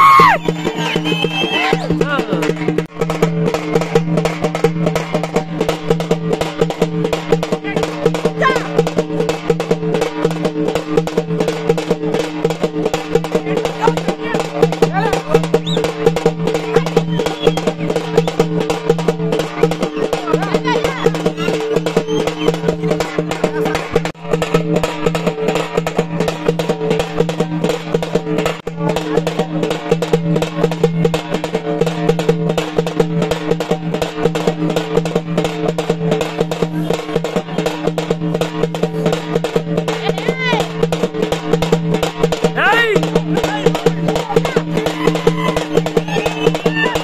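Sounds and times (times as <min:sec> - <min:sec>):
fast continuous drumming: 0:00.0 - 0:47.0.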